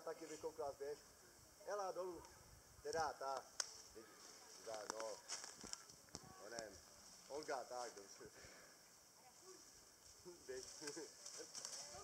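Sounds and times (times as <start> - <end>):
insects hissing: 0.0 - 12.0
rustling dry leaves underfoot: 3.6 - 8.2, 9.3 - 12.0.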